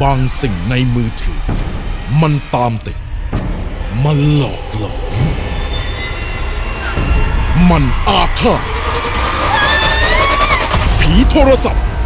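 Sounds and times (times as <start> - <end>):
low rumbling drone: 1.3 - 11.0.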